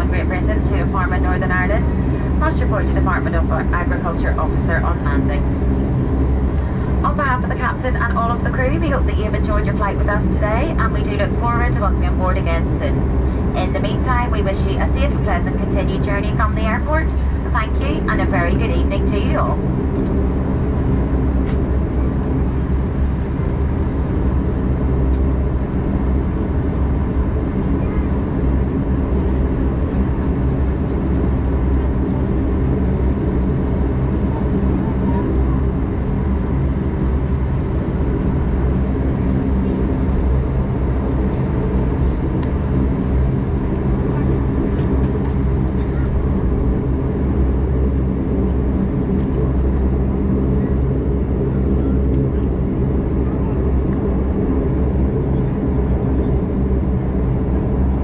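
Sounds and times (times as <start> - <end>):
turboprop engines droning in cabin: 0.0 - 58.0.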